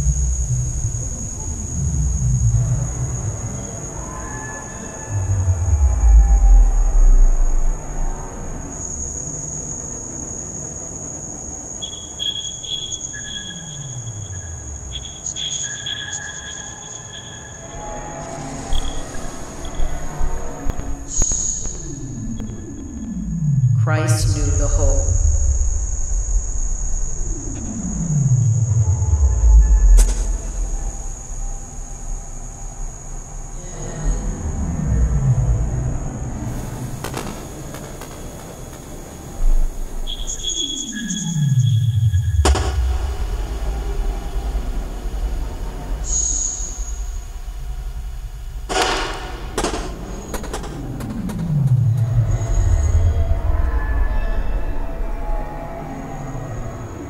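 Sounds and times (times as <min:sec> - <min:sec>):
steady high whine: 0:00.0 - 0:57.0
low rumble: 0:41.6 - 0:56.7.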